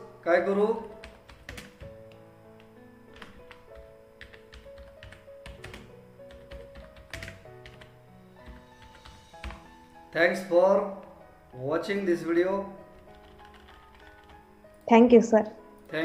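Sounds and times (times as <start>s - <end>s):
faint background music: 0.0s - 16.0s
computer keyboard typing: 0.7s - 9.8s, 12.8s - 14.9s.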